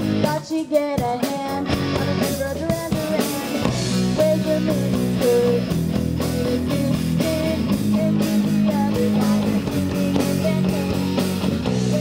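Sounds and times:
rock band playing instrumental: 0:00.0 - 0:12.0.

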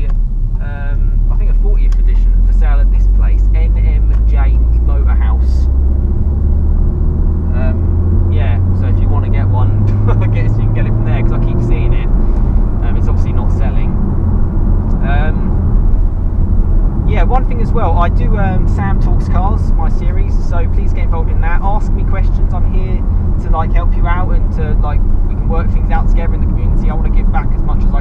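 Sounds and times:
car engine accelerating: 0:00.0 - 0:28.0
road noise: 0:00.0 - 0:28.0.

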